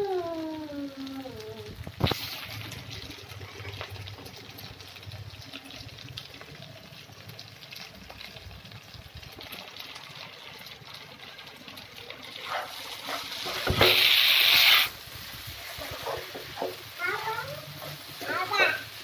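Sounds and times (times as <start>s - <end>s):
food sizzling in a pan: 0.0s - 19.0s
spatula stirring a pan: 9.4s - 19.0s.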